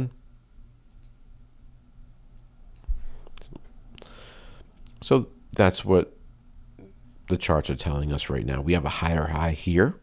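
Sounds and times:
steady room hum: 0.0s - 10.0s
computer mouse clicks: 0.9s - 1.2s.

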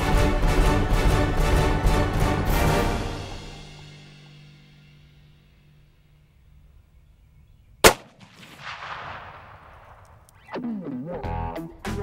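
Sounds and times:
rifle shot: 7.8s - 10.2s.

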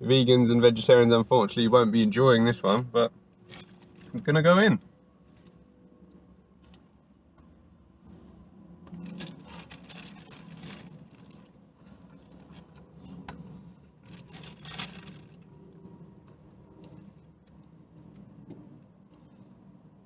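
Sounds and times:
rustling and handling noise: 2.6s - 4.3s, 5.2s - 18.8s.

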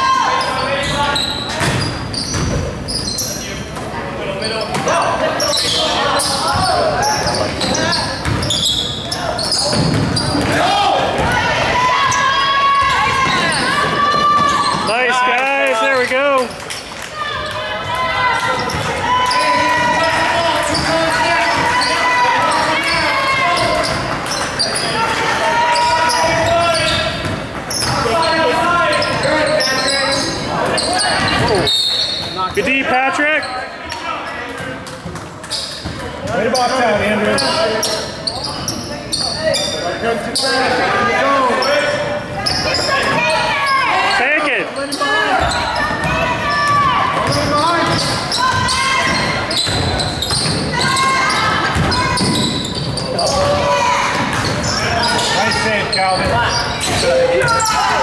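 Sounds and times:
people shouting: 10.3s - 16.0s, 17.2s - 23.9s, 24.8s - 26.9s, 42.7s - 55.8s, 56.4s - 58.0s.

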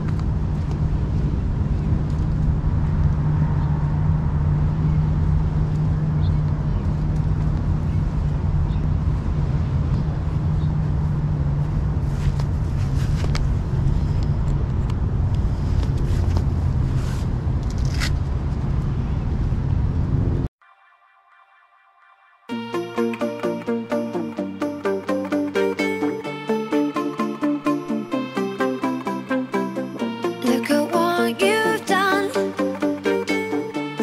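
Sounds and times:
vehicle engine humming: 0.0s - 20.5s, 22.5s - 34.0s.

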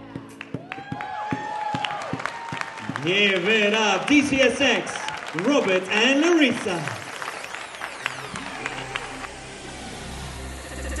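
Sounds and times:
audience clapping: 0.0s - 10.3s.

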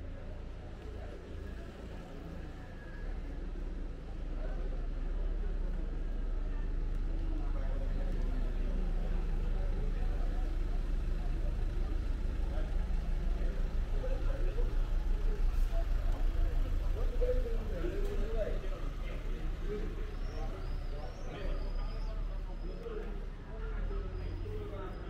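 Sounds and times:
motor vehicle engine rumbling: 0.0s - 25.0s
voices of passers-by: 0.0s - 25.0s.

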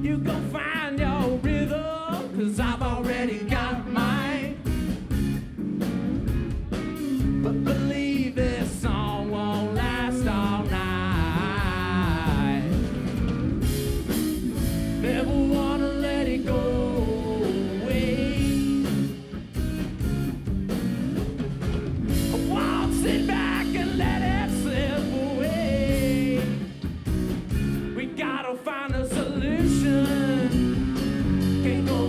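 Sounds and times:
live rock band playing: 0.0s - 32.0s.

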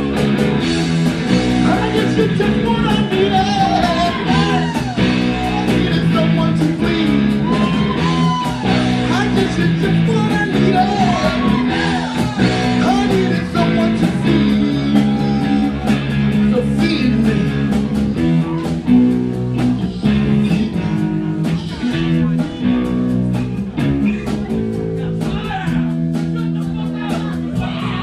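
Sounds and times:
bass guitar: 0.0s - 28.0s
drum kit steady beat: 0.0s - 28.0s
electric guitars: 0.0s - 28.0s.

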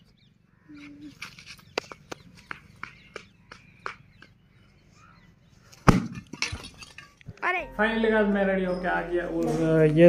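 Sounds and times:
sandal footsteps on pavement: 1.2s - 4.6s.

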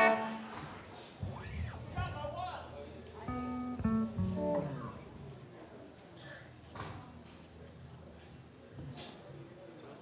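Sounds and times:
electric guitar single notes: 0.0s - 0.6s, 3.3s - 5.2s.

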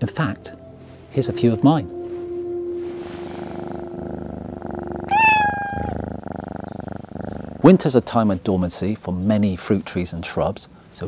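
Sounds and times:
cat purring: 1.3s - 9.0s
cat meowing: 5.1s - 6.0s.

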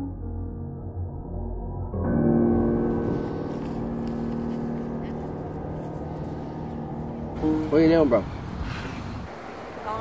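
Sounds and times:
eerie music: 0.0s - 9.4s.

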